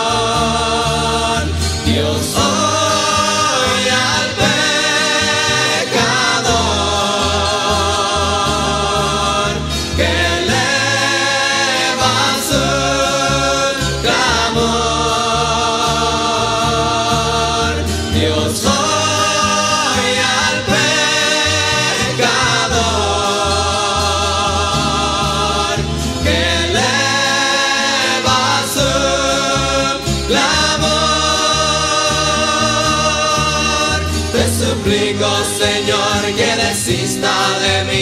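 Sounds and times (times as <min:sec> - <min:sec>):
string ensemble ballad: 0:00.0 - 0:38.0
voices singing in harmony: 0:00.0 - 0:38.0.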